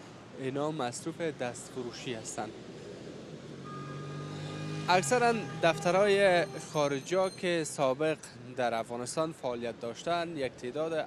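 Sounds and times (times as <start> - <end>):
street noise: 0.0 - 11.0
vehicle engine approaching: 3.2 - 7.1.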